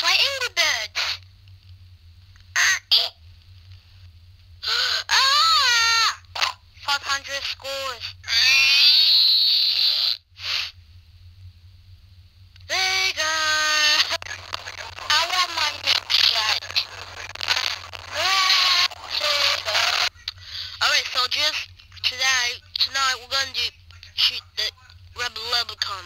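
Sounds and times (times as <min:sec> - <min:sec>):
child's voice through small speaker: 0:00.0 - 0:01.2, 0:02.6 - 0:03.1, 0:06.8 - 0:09.0, 0:12.7 - 0:14.2, 0:15.0 - 0:16.8, 0:18.1 - 0:19.9.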